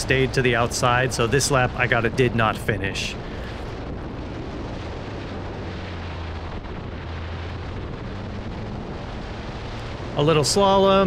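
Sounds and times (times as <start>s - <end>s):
car engine running: 0.0s - 11.0s
wind rushing on microphone: 0.0s - 11.0s.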